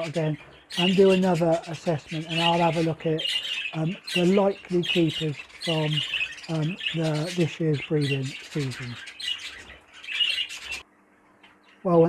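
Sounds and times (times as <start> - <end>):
budgerigars chirping: 0.0 - 10.8.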